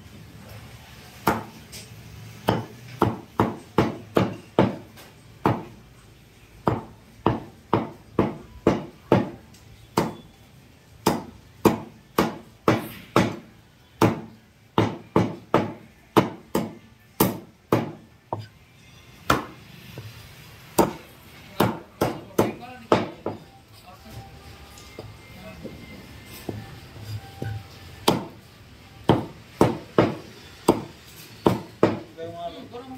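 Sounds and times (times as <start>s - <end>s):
cleaver chopping on wooden block: 6.7s - 9.4s, 10.0s - 10.2s, 11.0s - 18.5s, 20.8s - 21.0s, 28.0s - 28.3s, 29.1s - 32.1s.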